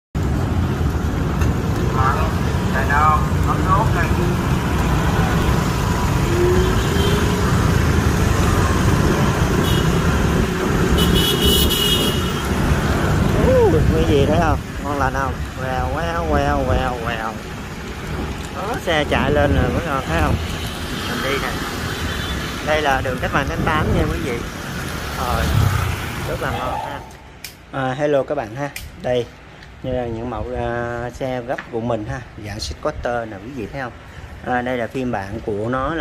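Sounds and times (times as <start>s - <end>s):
road traffic: 0.2s - 36.0s
wind noise on microphone: 4.6s - 17.1s, 18.1s - 20.8s, 22.7s - 26.4s
high horn beep: 9.6s - 10.0s, 11.0s - 12.4s.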